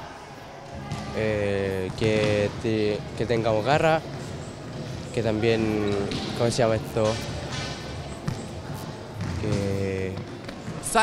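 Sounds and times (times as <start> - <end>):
volleyballs struck and bouncing: 0.7 - 11.0.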